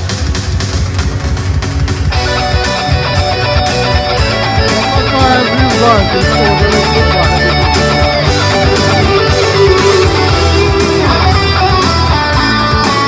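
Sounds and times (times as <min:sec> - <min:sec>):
backing with steady beat: 0:00.0 - 0:13.0
heavy rock electric guitar: 0:00.0 - 0:13.0.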